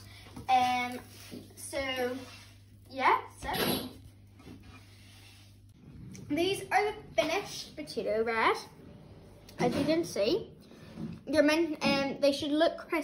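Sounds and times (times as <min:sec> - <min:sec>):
steady low hum: 0:00.0 - 0:11.8.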